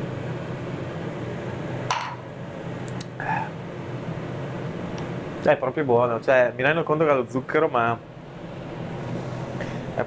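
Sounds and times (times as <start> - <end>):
extractor fan humming: 0.0 - 10.0.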